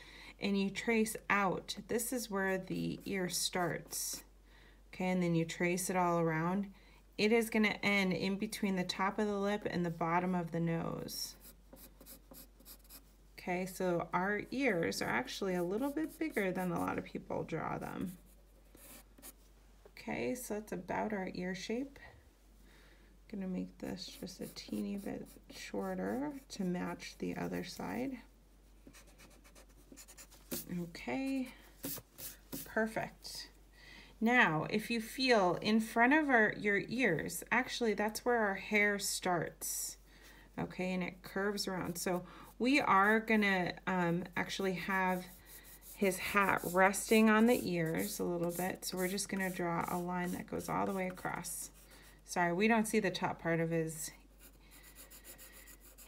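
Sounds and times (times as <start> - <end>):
pencil sketching on paper: 11.3 - 13.1, 14.6 - 17.0, 18.1 - 19.4, 24.0 - 27.8, 28.9 - 30.7, 41.8 - 52.3, 54.4 - 56.0.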